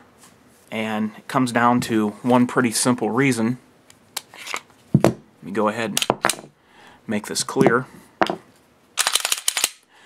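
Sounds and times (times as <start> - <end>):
pistol slide clacking: 9.0 - 9.8.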